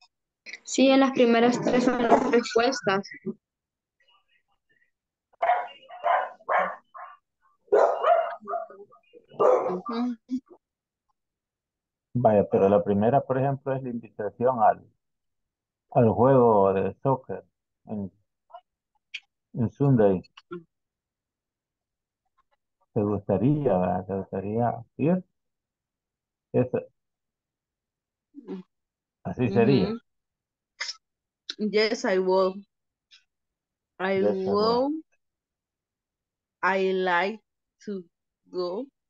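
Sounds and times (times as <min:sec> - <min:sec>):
person speaking: 0:00.5 - 0:03.4, 0:12.2 - 0:14.8, 0:16.0 - 0:18.1, 0:19.6 - 0:20.2, 0:23.0 - 0:25.2, 0:29.3 - 0:30.0, 0:34.0 - 0:35.0
dog barking: 0:05.4 - 0:09.8.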